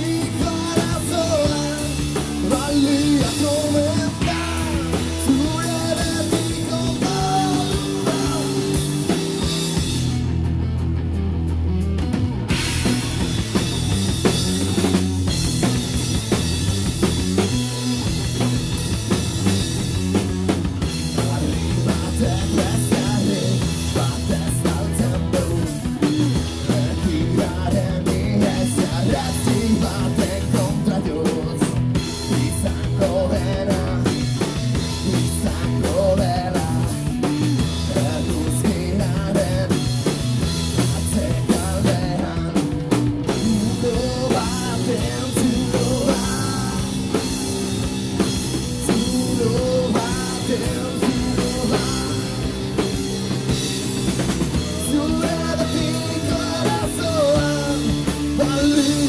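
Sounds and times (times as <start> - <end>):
bass guitar: 0.0 - 59.0
drum kit with cymbals: 0.0 - 59.0
electric guitar: 0.0 - 59.0.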